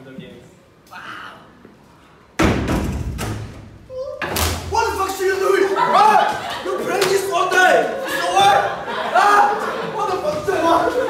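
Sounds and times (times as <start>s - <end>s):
wooden door banging: 2.4s - 4.9s
voices: 3.9s - 11.0s.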